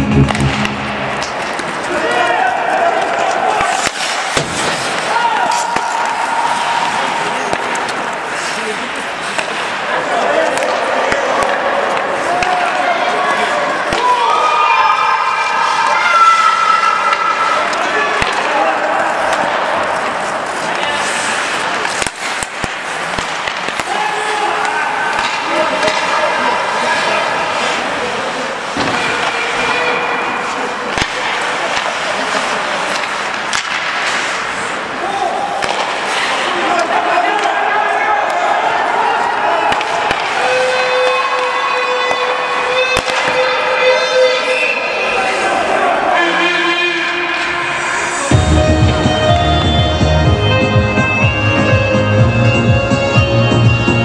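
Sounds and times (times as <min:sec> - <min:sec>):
players shouting: 0:00.0 - 0:53.8
skates scraping ice: 0:00.1 - 0:51.7
sticks and puck clacking: 0:00.2 - 0:14.5, 0:15.4 - 0:51.7.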